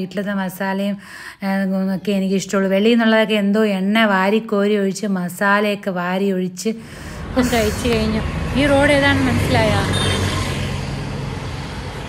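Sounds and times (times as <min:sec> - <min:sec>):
road traffic passing: 0:06.8 - 0:12.0.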